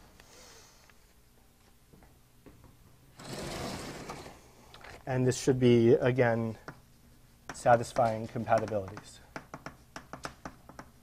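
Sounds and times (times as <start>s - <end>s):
blackboard panel rolling rattle: 3.2s - 4.4s.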